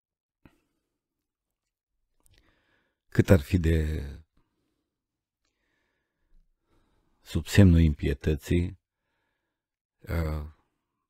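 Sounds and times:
man talking: 0:03.1 - 0:04.2, 0:07.3 - 0:08.8, 0:10.0 - 0:10.6.

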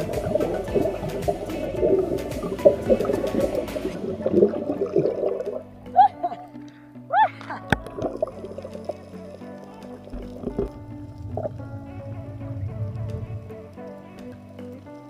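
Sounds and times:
underwater bubbling and gurgling: 0:00.0 - 0:06.0, 0:07.6 - 0:15.0
background music with held notes: 0:00.0 - 0:15.0.

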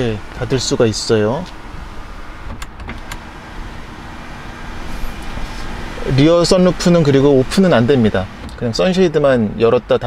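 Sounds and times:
sunshade motor humming: 0:00.0 - 0:08.6.

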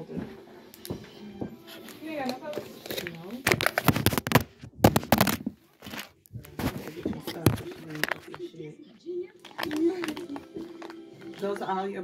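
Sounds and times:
woman's voice: 0:02.0 - 0:03.5, 0:06.4 - 0:10.6, 0:11.3 - 0:12.0.

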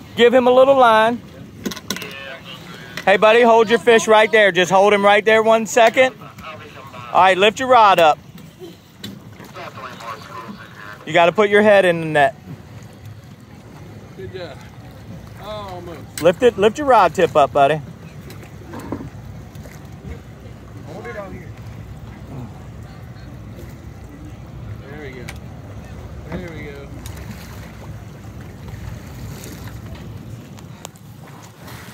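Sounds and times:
boat engine rumble: 0:00.0 - 0:31.9
water splashing: 0:00.0 - 0:31.9
faint voices: 0:01.1 - 0:28.2.

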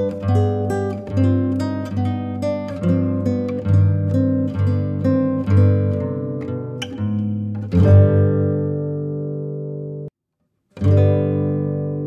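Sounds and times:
guitar chords ringing: 0:00.0 - 0:10.1, 0:10.8 - 0:12.0.

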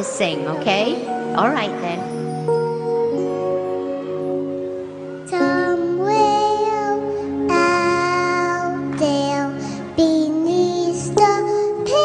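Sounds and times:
backing track music: 0:00.0 - 0:12.0
girl singing into microphone: 0:05.2 - 0:12.0.

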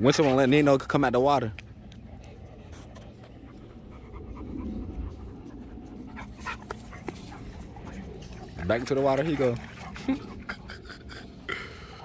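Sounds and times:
dog panting: 0:00.1 - 0:12.0.

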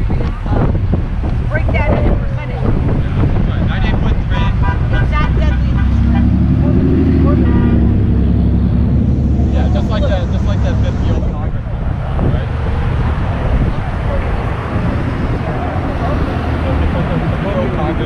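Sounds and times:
people talking: 0:00.0 - 0:00.8, 0:01.5 - 0:08.0, 0:09.4 - 0:18.0
heavy vehicle rumbling past: 0:00.0 - 0:18.0
road traffic passing: 0:00.0 - 0:18.0
wind buffeting microphone: 0:00.0 - 0:18.0.

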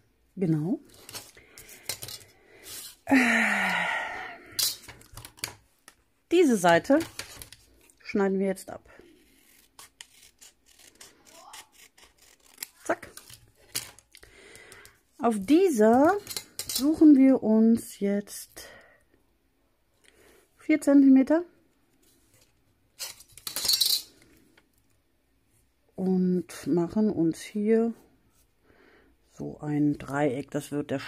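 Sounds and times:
scissors snipping paper: 0:09.2 - 0:14.2.

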